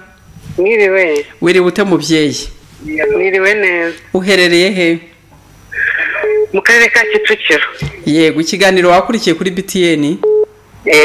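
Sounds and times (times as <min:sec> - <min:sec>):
voice through phone speaker: 0:02.8 - 0:04.0, 0:05.7 - 0:08.0.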